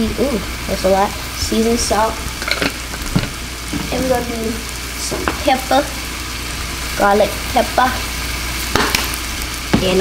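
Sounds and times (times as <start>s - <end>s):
meat sizzling in oil: 0.0s - 10.0s.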